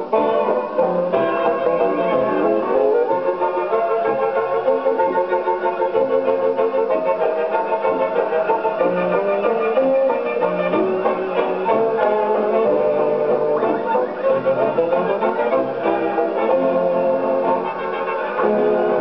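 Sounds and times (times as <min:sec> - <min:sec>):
orchestral dance music on old record: 0:00.0 - 0:19.0.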